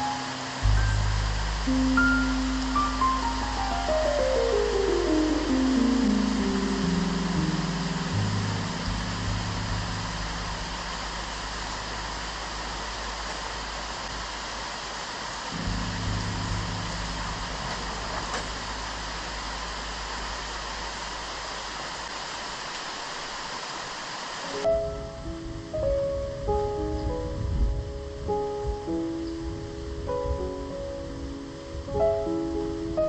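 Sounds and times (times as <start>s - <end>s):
low sustained music notes: 0.0s - 14.6s, 15.5s - 22.0s, 24.6s - 33.0s
rain on foliage: 0.0s - 33.0s.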